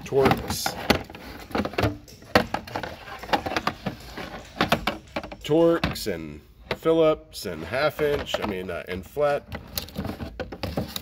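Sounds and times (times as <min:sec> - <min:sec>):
plastic case clicks and knocks: 0:00.2 - 0:06.0.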